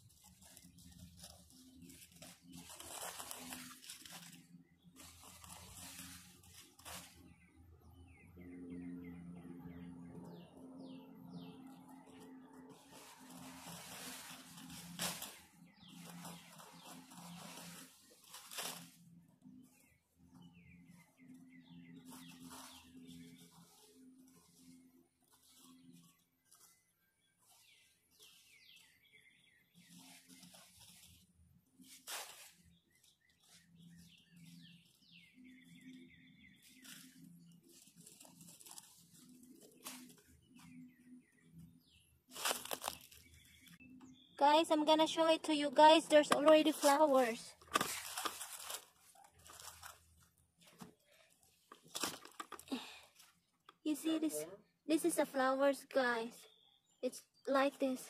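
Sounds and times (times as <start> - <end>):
rustling and crunching of leaf litter: 0.0 - 8.2, 11.6 - 43.8, 45.0 - 54.3
small birds chirping: 0.0 - 58.0.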